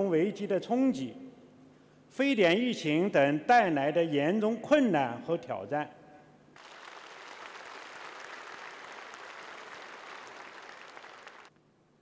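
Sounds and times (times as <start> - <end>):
audience applauding: 6.6 - 11.5.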